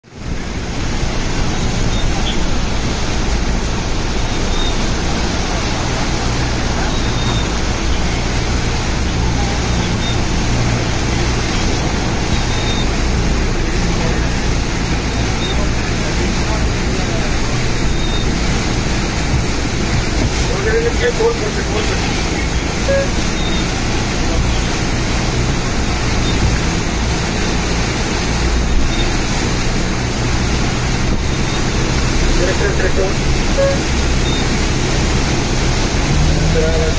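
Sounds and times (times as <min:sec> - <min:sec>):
heavy rain rushing: 0:00.0 - 0:36.9.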